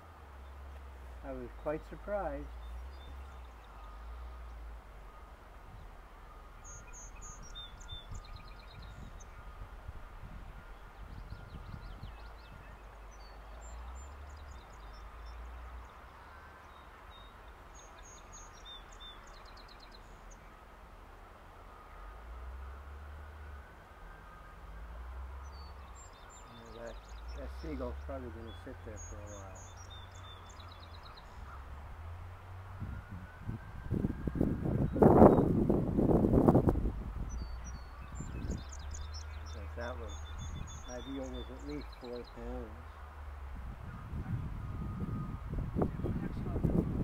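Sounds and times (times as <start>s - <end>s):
wind rumble on microphone: 0.0s - 19.6s, 22.4s - 47.0s
small birds chirping: 0.0s - 33.2s, 34.6s - 47.0s.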